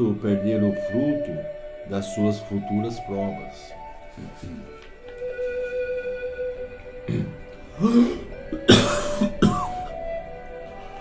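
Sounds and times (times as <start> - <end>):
man coughing: 7.1 - 9.8.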